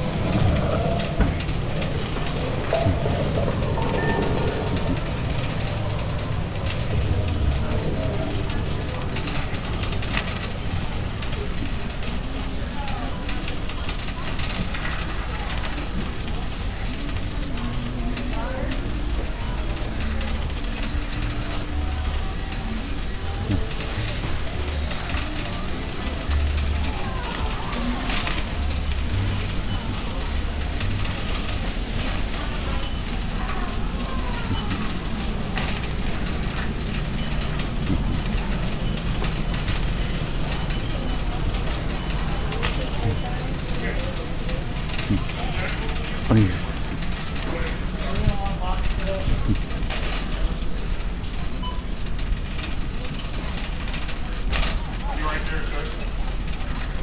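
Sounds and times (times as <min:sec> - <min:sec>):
faint background music: 0:00.0 - 0:57.0
indistinct chatter: 0:00.0 - 0:57.0
shopping cart rolling on concrete: 0:00.0 - 0:57.0.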